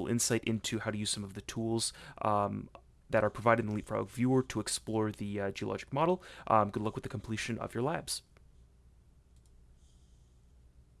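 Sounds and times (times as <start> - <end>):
faint mouse click: 9.3 - 9.6.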